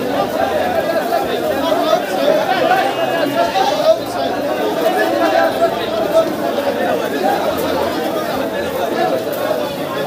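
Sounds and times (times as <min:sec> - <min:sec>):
crowd of men chattering: 0:00.0 - 0:10.0.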